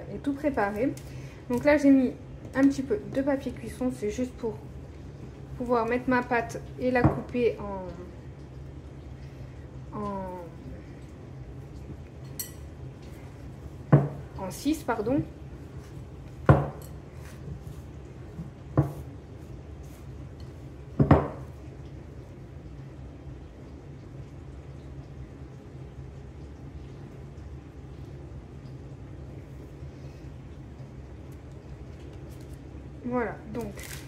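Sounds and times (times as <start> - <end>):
low background hum: 0.0 - 34.0
glass bowl knocking on wooden table: 13.9 - 14.2, 16.5 - 16.8, 21.0 - 21.4.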